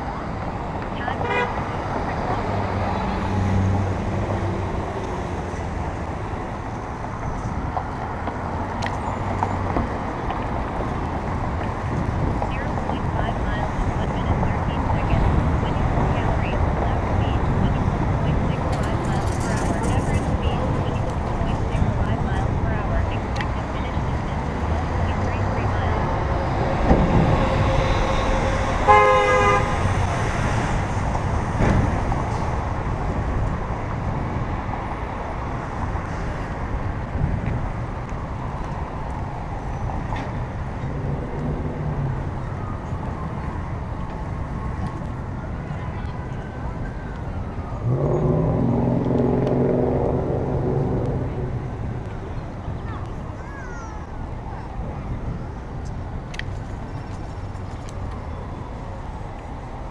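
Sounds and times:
city street traffic: 0.0 - 59.9
low-pitched vehicle or voice: 0.0 - 59.9
car horn toot: 1.2 - 1.8, 28.8 - 29.9.

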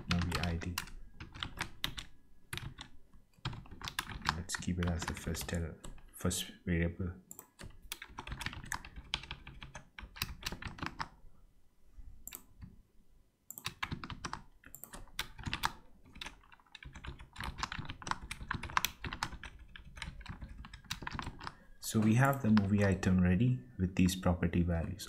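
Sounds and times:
typing on computer keyboard: 0.0 - 6.1, 7.3 - 11.2, 13.5 - 23.0.

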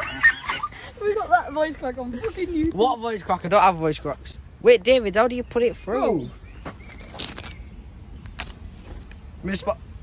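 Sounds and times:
handling rustling: 6.7 - 9.2.

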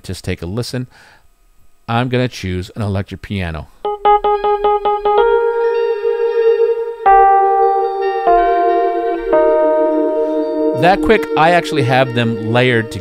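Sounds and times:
tremolo electric piano chords: 3.8 - 13.0.

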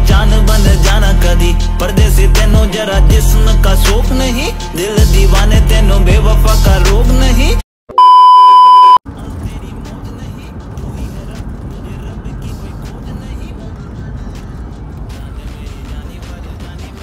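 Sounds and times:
car road and engine noise: 0.0 - 7.6, 9.1 - 17.0
song playing: 0.0 - 7.6
loud electronic beep: 7.9 - 9.0.

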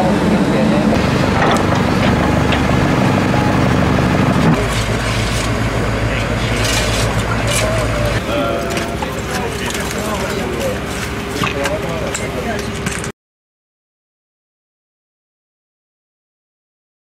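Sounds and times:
excavator diesel engines running: 0.0 - 13.1
metal knocks and clanks: 1.0 - 13.1.

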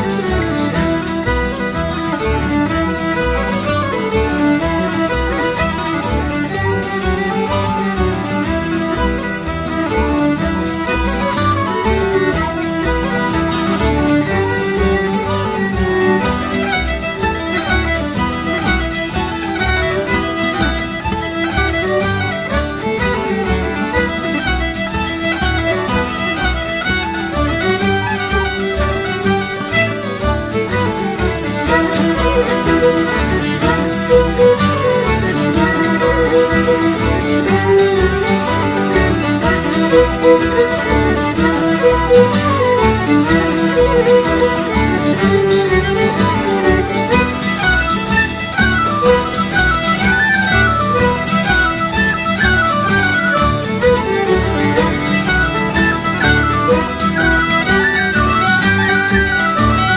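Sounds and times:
fiddle melody: 0.0 - 59.9
folk band playing a jig: 0.0 - 59.9.

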